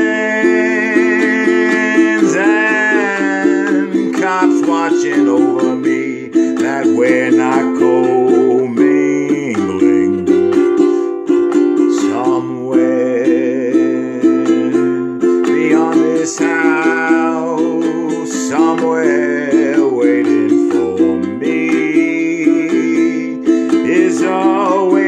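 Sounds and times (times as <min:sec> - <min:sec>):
man singing: 0:00.0 - 0:25.0
ukulele strumming: 0:00.0 - 0:25.0.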